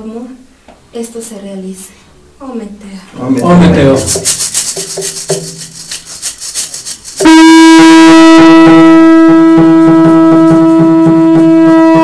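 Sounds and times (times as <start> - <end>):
hand rattle shaken: 3.8 - 7.3.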